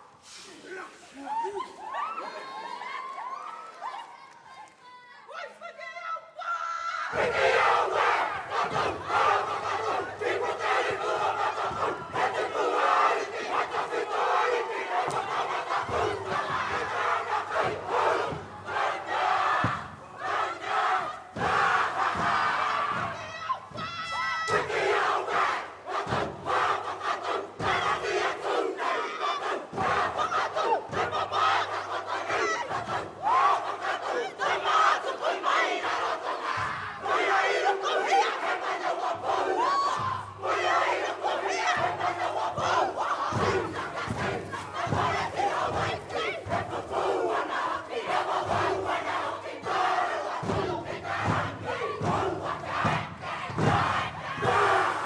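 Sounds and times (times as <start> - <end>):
group chanting and shouting: 0.0 - 55.0.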